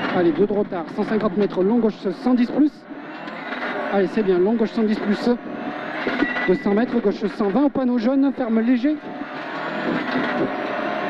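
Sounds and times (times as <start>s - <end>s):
rally car engine accelerating: 0.0s - 11.0s
tyre and gravel road noise: 0.0s - 11.0s.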